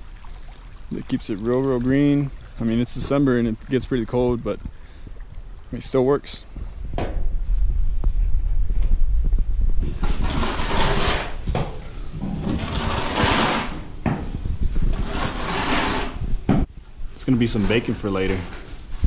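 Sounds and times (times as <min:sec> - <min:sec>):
low rumble: 0:06.6 - 0:10.8
tool scraping concrete floor: 0:09.8 - 0:16.4.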